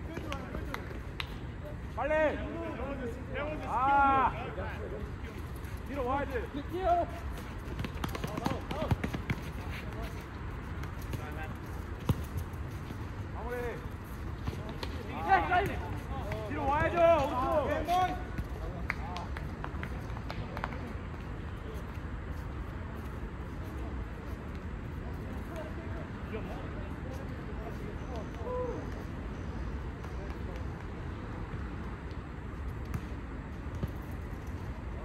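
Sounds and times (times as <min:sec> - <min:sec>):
low background noise: 0:00.0 - 0:35.0
running footfalls: 0:06.9 - 0:21.4
players shouting: 0:15.0 - 0:18.3.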